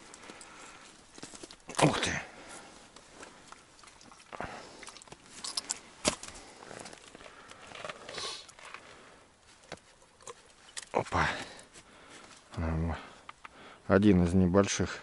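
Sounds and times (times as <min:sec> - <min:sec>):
clicks and rustles of fishing gear: 0:00.0 - 0:12.6, 0:13.2 - 0:13.6.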